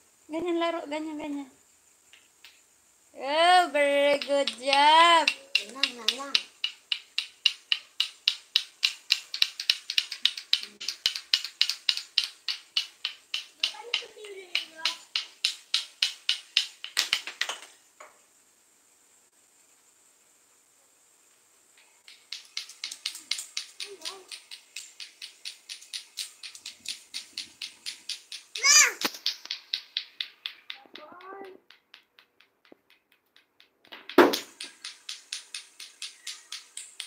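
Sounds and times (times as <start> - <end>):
child's voice: 3.2 - 6.5, 13.6 - 15.1, 23.8 - 24.4, 28.6 - 29.1, 30.8 - 31.6
plastic clacker toy clacking: 3.7 - 17.7, 22.0 - 37.0.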